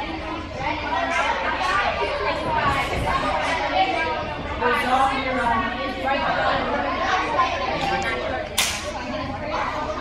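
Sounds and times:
girls chattering in echoing gym: 0.0 - 10.0
sharp slap or clap: 8.6 - 8.9.

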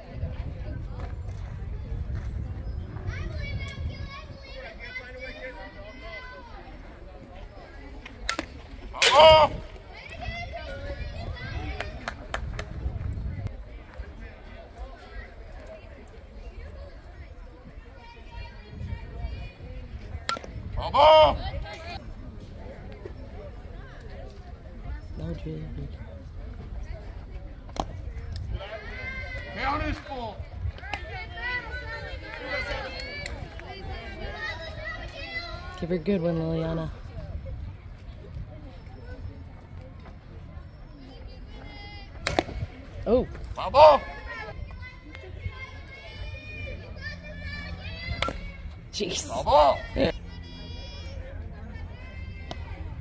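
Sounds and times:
faint chatter of people: 0.0 - 53.0
faint voices: 0.0 - 53.0
low wind rumble: 0.0 - 53.0
loud shout: 9.0 - 9.6, 20.8 - 21.6.

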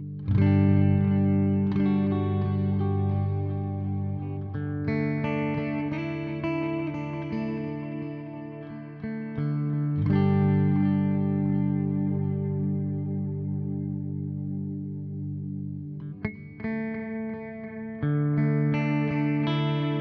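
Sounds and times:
electric guitar with echoing delay: 0.0 - 20.0.

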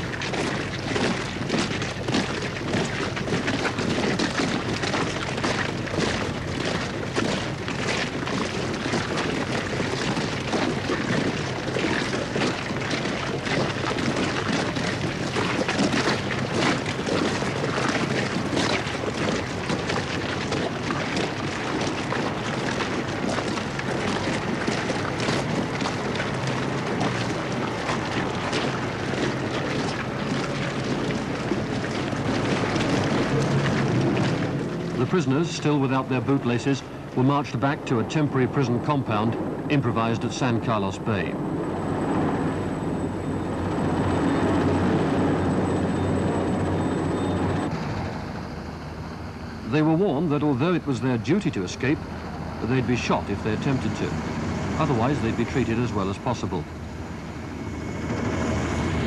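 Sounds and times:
footsteps of a crowd: 0.0 - 35.2.

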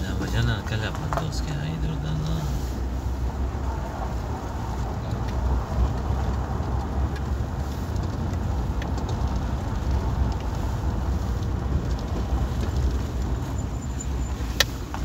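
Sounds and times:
car rumbling on gravel road: 0.0 - 15.0.

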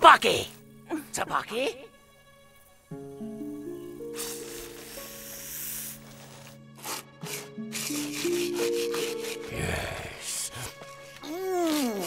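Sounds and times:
short rasping strokes: 4.0 - 9.9
scratchy hissing scrape: 4.0 - 10.0
cartoon background music chord: 7.6 - 10.8.

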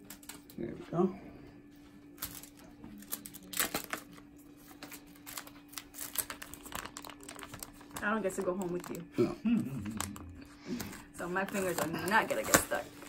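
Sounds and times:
plastic drape crinkling: 2.2 - 9.0, 10.9 - 13.0.

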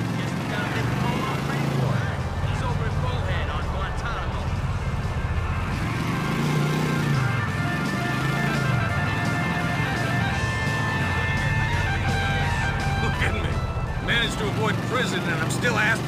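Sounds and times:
music: 0.0 - 16.0
video game motorcycle engine: 0.0 - 16.0.

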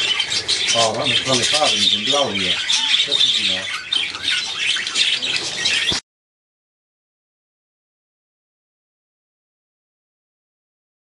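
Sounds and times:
budgerigars chirping: 0.0 - 6.0.

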